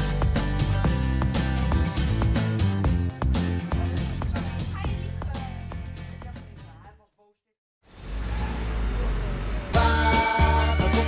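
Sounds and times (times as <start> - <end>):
upbeat jingle music: 9.8 - 11.0.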